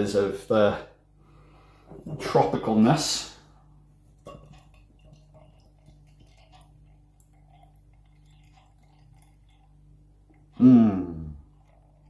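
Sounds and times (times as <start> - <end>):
beer pouring into a glass: 4.2 - 12.0.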